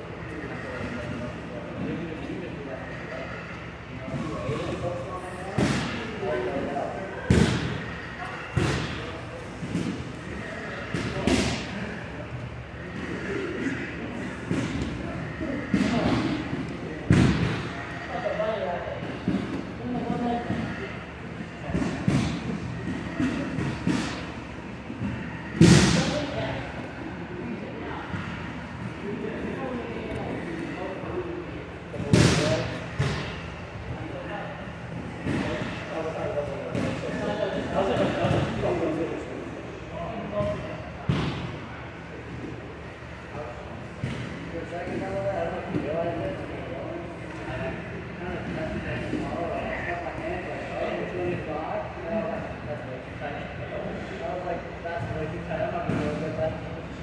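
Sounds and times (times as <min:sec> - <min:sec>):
voices in a gym: 0:00.0 - 0:57.0.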